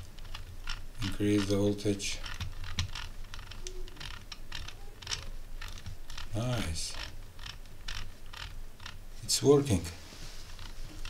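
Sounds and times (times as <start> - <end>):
rotary knob clicking: 0.0 - 9.0, 10.5 - 11.0.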